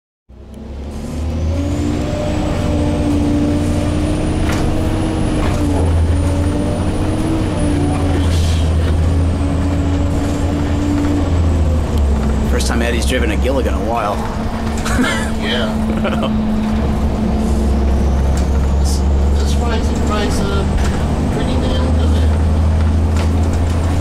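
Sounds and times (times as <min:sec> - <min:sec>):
bus engine drone: 0:00.3 - 0:24.0.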